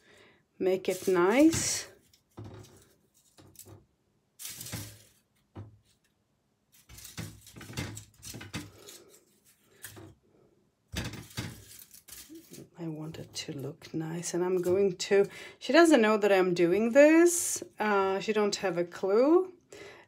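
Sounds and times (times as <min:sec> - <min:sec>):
dried petals rustling: 0:00.0 - 0:06.0, 0:06.7 - 0:10.2, 0:11.0 - 0:15.0.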